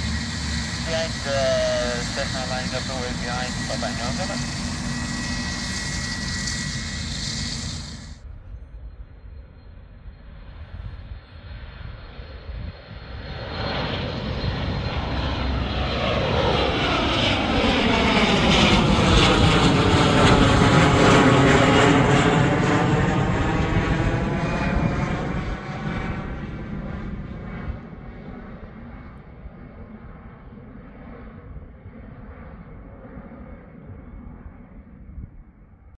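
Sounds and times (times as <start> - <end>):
jet taking off overhead: 0.0 - 35.8.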